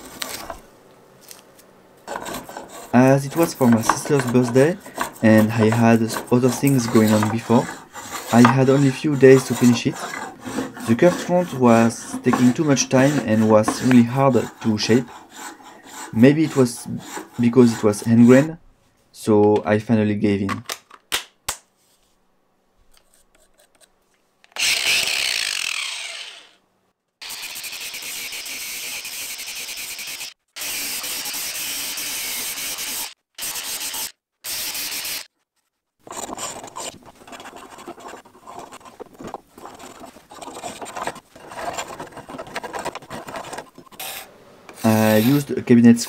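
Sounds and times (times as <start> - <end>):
power sander grinding wood: 2.1 - 18.5, 24.6 - 26.6, 27.2 - 35.3
hand scraper strokes on wood: 2.1 - 18.6, 36.0 - 45.6.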